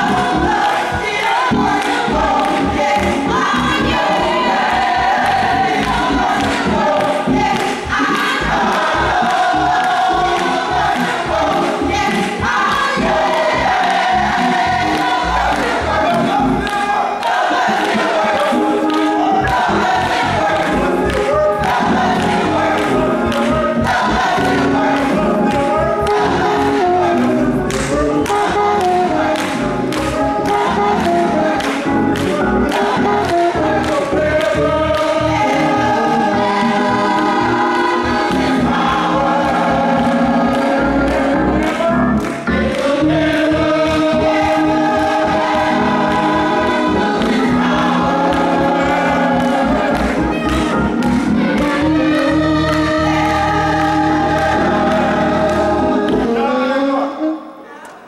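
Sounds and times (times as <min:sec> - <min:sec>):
choir singing in harmony: 0:00.0 - 0:57.7.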